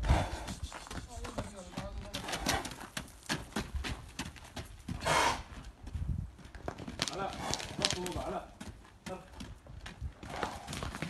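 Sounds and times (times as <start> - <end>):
hooves striking gravel: 0.1 - 11.0.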